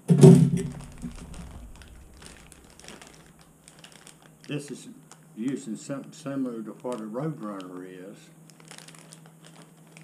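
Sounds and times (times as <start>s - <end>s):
plastic bag crinkling: 0.3s - 10.0s.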